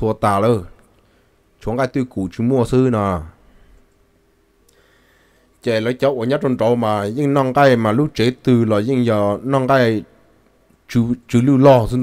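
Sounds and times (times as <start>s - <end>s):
man narrating: 0.0s - 0.8s, 1.6s - 3.4s, 5.6s - 10.1s, 10.9s - 12.0s
faint steady background hum: 0.0s - 12.0s.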